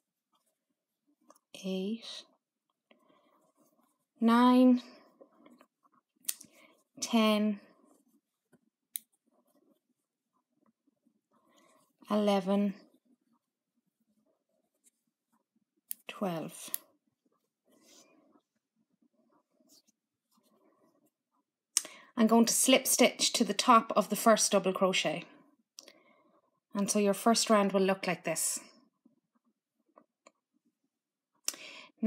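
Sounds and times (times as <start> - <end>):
crochet hook rustling and ticks: 0.0 - 21.5.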